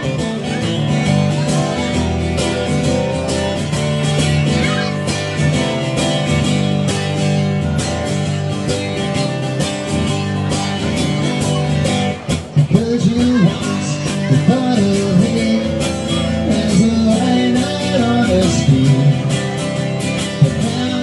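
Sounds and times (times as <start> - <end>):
acoustic guitar strumming: 0.0 - 21.0
person singing: 8.6 - 21.0.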